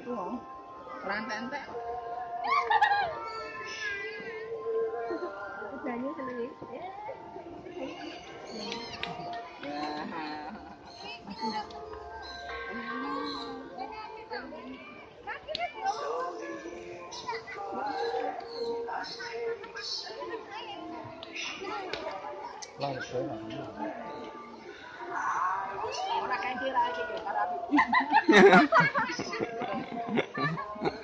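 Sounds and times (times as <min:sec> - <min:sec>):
people's voices: 0:00.0 - 0:31.0.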